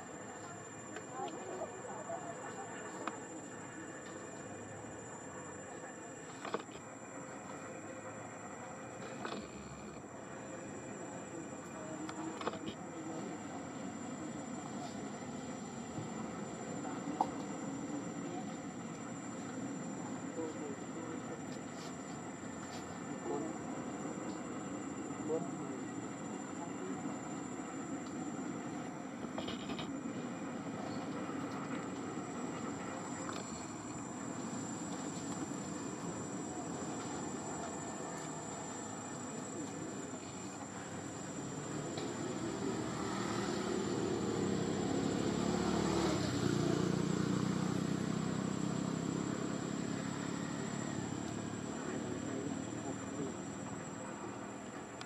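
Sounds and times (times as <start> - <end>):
distant voices: 0.0 - 55.0
high insect whine: 0.0 - 55.0
motor vehicle passing: 41.8 - 53.5.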